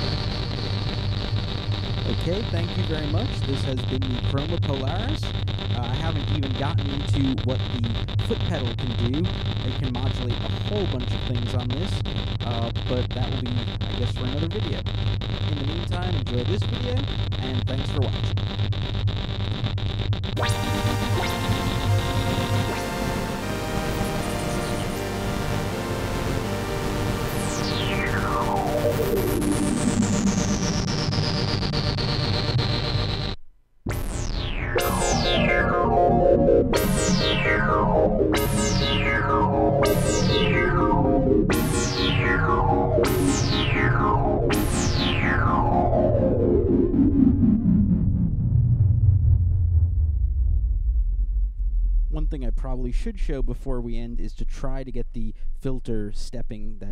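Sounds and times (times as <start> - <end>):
synthesizer notes with falling sweeps: 19.6 - 33.3, 33.9 - 50.4.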